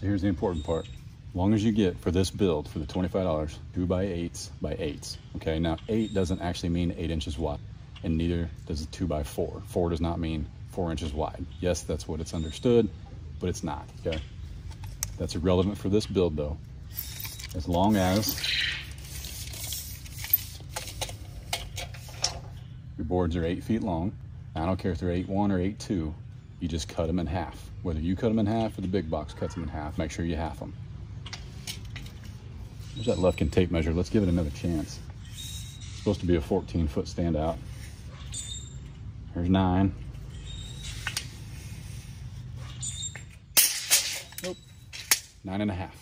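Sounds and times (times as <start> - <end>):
metal tape blade clattering: 16.9 - 22.6, 42.8 - 45.4.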